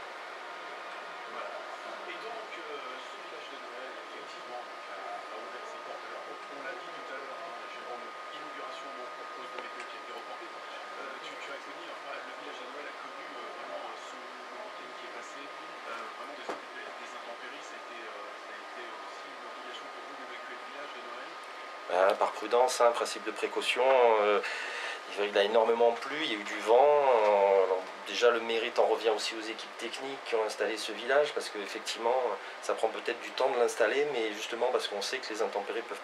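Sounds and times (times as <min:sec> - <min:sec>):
steady high-pitched whine: 0:00.0 - 0:36.0
man speaking close to microphone: 0:01.3 - 0:36.0.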